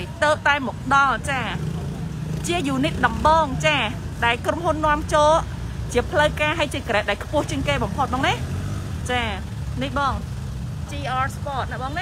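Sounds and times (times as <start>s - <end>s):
low vehicle rumble: 0.0s - 12.0s.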